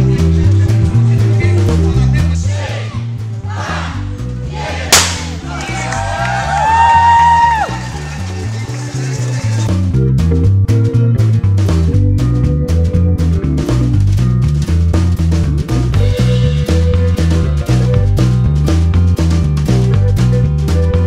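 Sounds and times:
background music with steady beat: 0.0s - 21.0s
starting gun bang: 4.9s - 5.5s.

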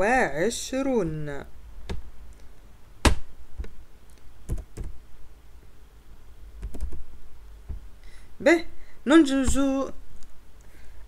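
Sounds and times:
computer keyboard typing: 4.5s - 5.0s, 6.6s - 7.0s.

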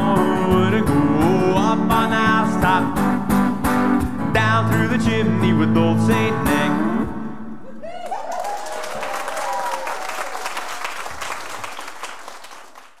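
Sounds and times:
whoops: 7.6s - 10.9s
audience applauding and cheering: 7.8s - 13.0s.

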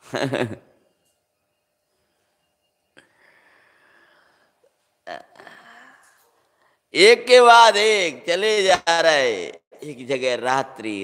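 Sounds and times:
man chuckling: 0.0s - 0.8s.

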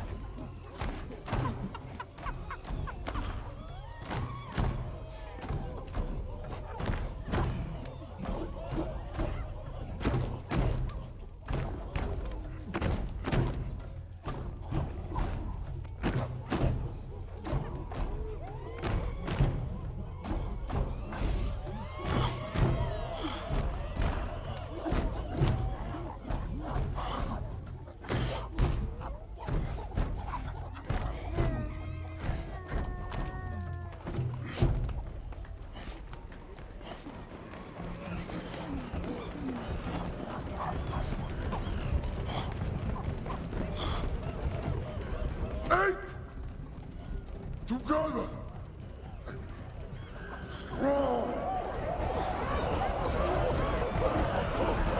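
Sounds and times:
film music: 0.0s - 54.9s.

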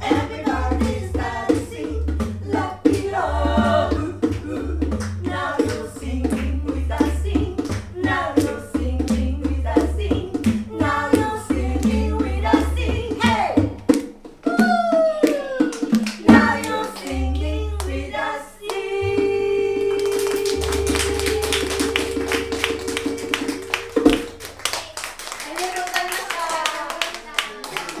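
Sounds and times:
women singing: 0.0s - 13.8s, 14.5s - 24.5s
audience clapping: 15.2s - 17.2s, 19.9s - 28.0s
voices in audience: 25.5s - 28.0s.

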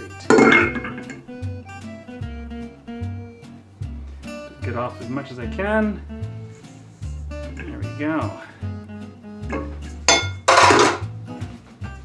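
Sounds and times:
soft acoustic guitar music: 0.0s - 12.0s
metal bowl clanking: 0.2s - 1.3s, 9.5s - 11.1s.

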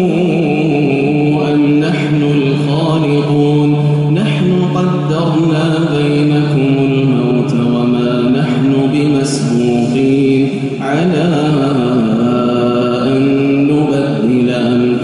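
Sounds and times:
man reciting melodically: 0.0s - 15.0s.

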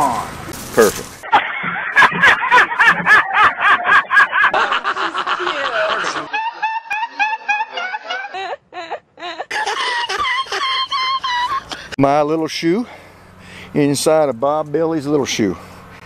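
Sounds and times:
hearty human laughter: 1.2s - 12.0s.

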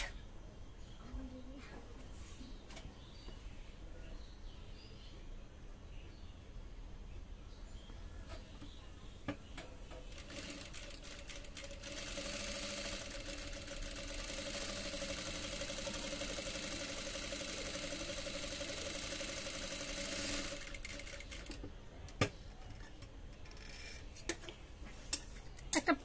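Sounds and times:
sewing machine stitching: 10.0s - 21.6s.

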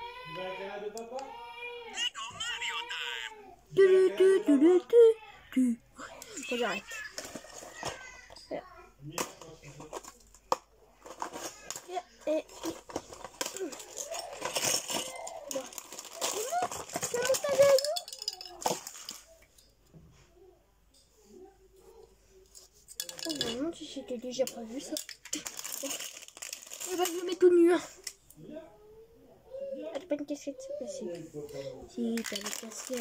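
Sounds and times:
child's voice: 1.9s - 9.0s, 15.0s - 18.8s, 26.8s - 28.0s, 29.5s - 31.2s, 32.0s - 33.0s.

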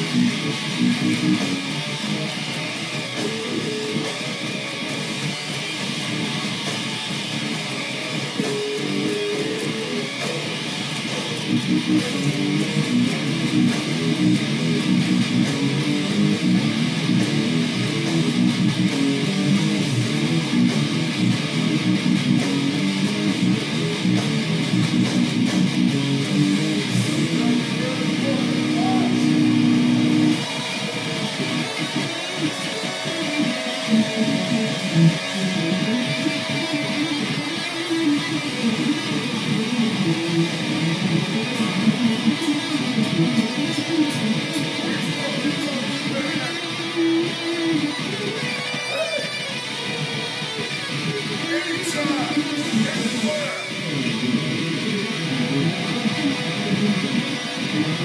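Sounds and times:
electric guitar playing heavy riff: 0.0s - 58.0s.

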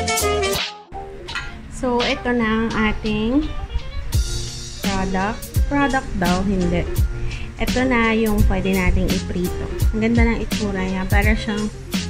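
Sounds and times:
ceramic plate clinking: 1.3s - 1.6s.

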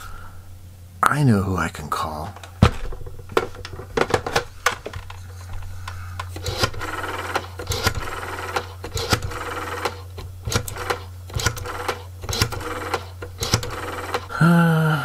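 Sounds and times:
steady low hum: 0.0s - 15.0s
rotary telephone dial clicking: 6.2s - 14.3s.

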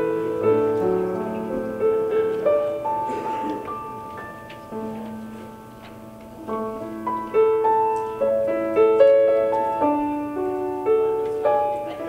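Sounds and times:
soft piano music: 0.0s - 12.0s.

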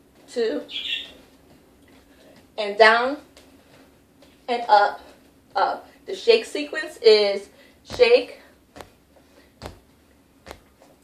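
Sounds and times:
short sharp foot taps: 7.9s - 11.0s.

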